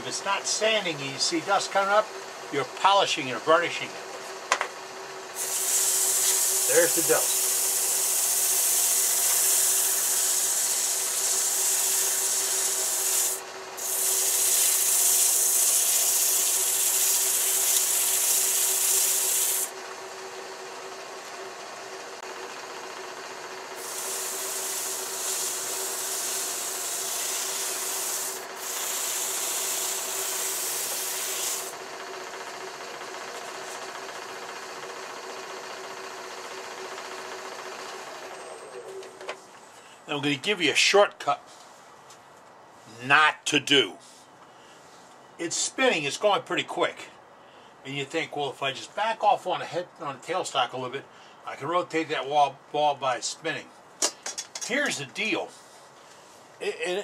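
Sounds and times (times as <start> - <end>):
lathe humming: 4.9 - 39.2
sandpaper sanding wood: 5.4 - 19.7, 23.8 - 31.8.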